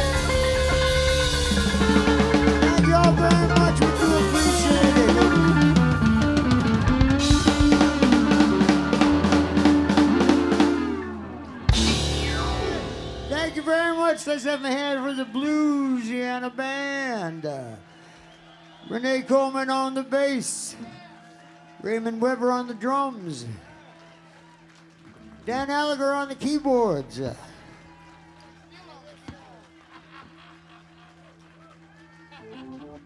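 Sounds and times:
crowd chatter: 0.0s - 16.6s
man singing long notes: 2.5s - 6.3s.

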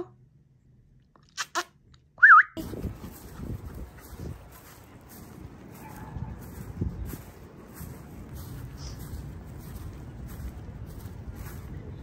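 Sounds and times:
low outdoor rumble and rustle: 2.6s - 12.0s.

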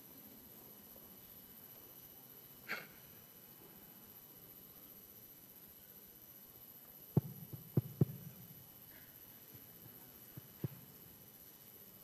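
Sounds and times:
faint steady hum: 0.0s - 12.0s
dull thumps: 7.2s - 8.4s.

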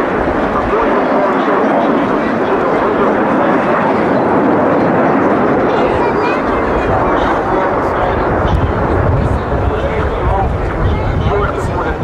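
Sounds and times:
jet engines flying over: 0.0s - 12.0s.

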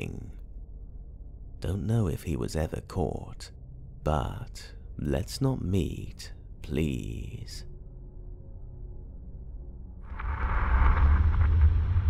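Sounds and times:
deep rumble: 7.7s - 12.0s.

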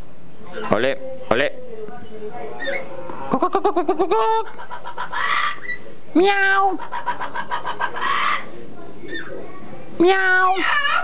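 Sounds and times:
parrot chirping and calling: 2.6s - 9.4s, 10.1s - 11.0s
parrot raspy screech: 4.8s - 5.8s, 6.6s - 8.5s.

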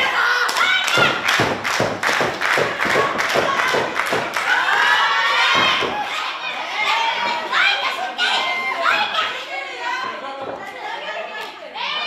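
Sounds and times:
people clapping: 0.0s - 6.2s.

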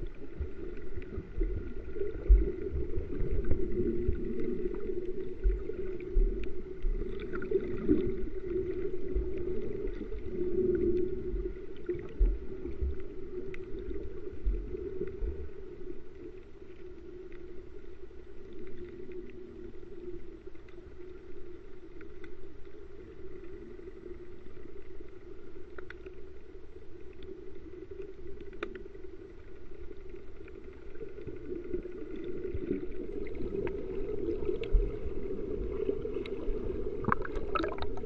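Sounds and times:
low underwater drone: 0.0s - 38.0s
faint sharp clicks: 21.8s - 22.4s, 25.6s - 26.2s, 27.0s - 28.9s.

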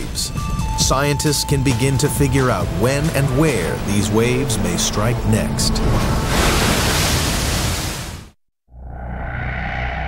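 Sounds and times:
ocean wave breaking: 2.9s - 8.4s.

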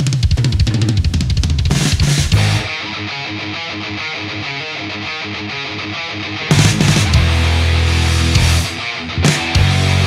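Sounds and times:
fast rock drumming: 0.0s - 3.8s, 6.5s - 10.0s.

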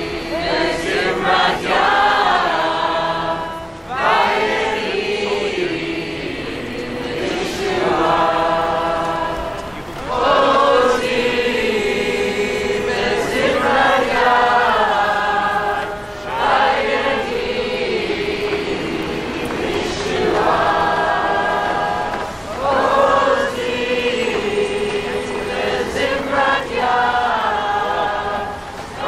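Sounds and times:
crowd singing unaccompanied: 0.0s - 29.0s.

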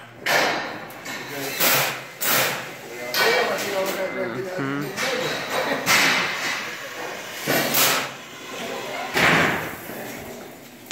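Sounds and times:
faint voices: 2.9s - 7.5s.

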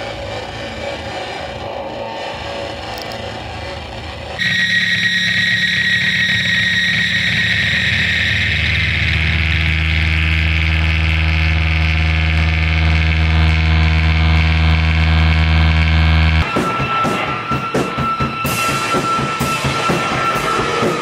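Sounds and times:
deep hum: 0.0s - 18.1s
distorted guitar feedback drone: 0.0s - 21.0s
high whistle: 4.4s - 9.9s, 16.4s - 21.0s.

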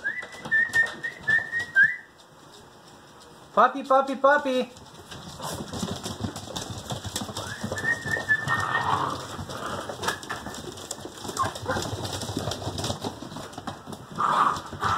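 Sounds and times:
puppy claws clicking on wood floor: 4.6s - 14.9s
puppy whining: 7.4s - 10.5s, 11.3s - 12.0s.

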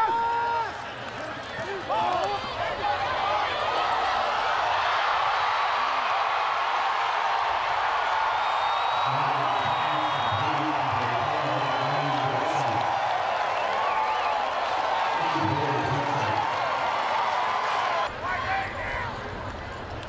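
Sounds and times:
stadium crowd cheering: 0.0s - 20.0s
man speaking: 9.1s - 12.8s, 15.2s - 16.5s.

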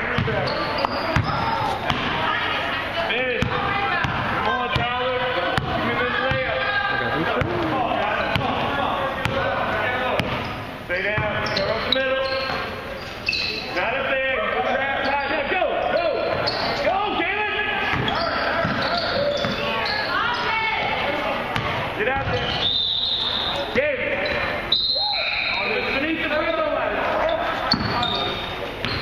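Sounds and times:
echoing voices: 0.0s - 29.0s
basketball bouncing on wooden floor: 5.6s - 6.5s.

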